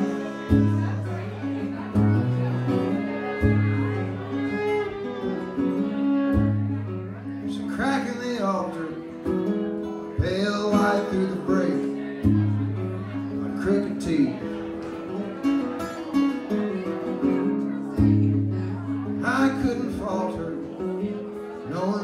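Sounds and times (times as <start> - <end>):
acoustic guitar: 0.0 - 22.0
fiddle playing: 0.0 - 22.0.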